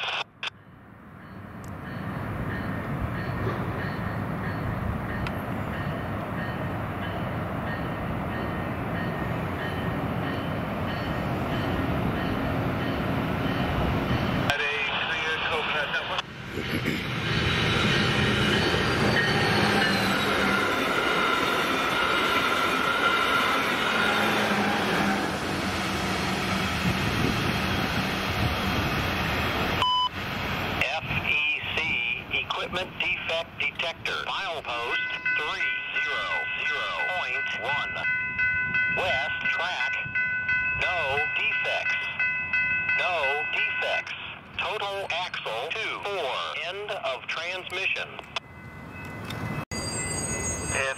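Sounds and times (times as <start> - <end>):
voice chatter over radio: 14.5 - 17.0, 30.8 - 38.0, 43.0 - 48.3
steady high tones: 48.4 - 50.9.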